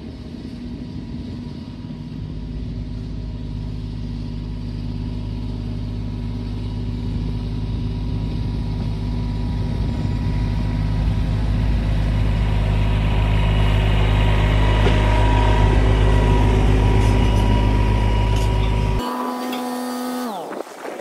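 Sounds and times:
tractor engine running: 0.0 - 21.0.

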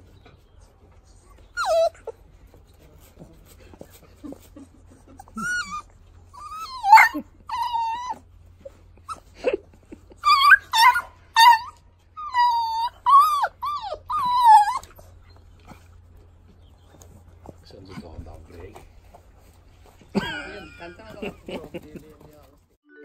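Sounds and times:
puppies whining: 0.0 - 22.5.

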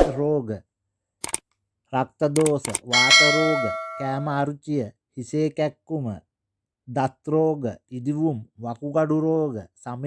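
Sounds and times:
bright bell ding: 2.9 - 4.3.

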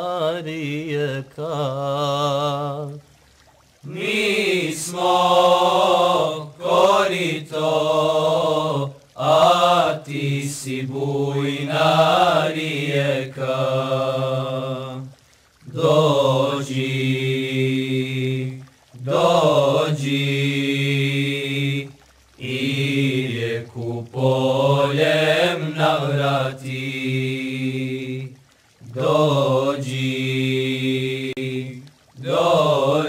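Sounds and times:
men singing a cappella: 0.0 - 3.0, 3.8 - 15.1, 15.7 - 33.0
low sustained vocal drone: 3.8 - 33.0.

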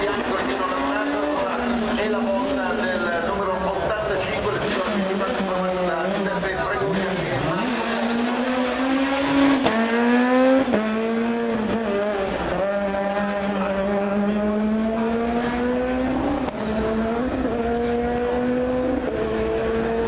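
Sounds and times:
rally car engine at full throttle: 0.0 - 20.0.

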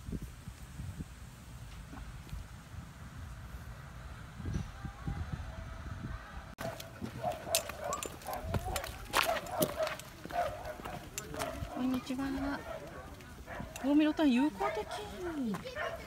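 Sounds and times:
wind rumbling on microphone: 0.0 - 14.2
people's voices: 4.6 - 16.0
footsteps on gravel: 6.6 - 16.0.

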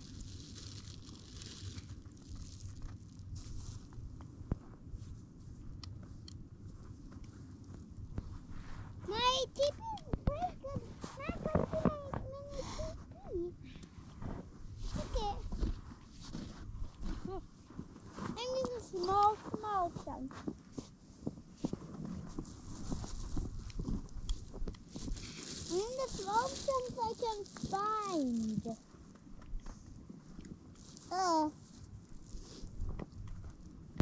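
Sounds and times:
child making wordless calls: 31.1 - 31.5.

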